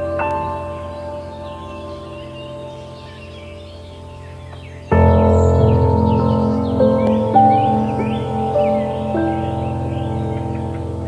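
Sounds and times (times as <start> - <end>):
bird chirps: 0.0 - 11.0
soft new-age music: 0.0 - 11.0.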